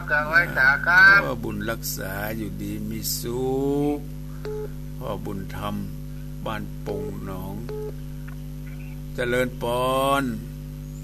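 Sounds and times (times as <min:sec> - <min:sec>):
person speaking: 0:00.0 - 0:04.1, 0:05.0 - 0:07.8, 0:08.7 - 0:10.6
electrical mains hum: 0:00.0 - 0:11.0.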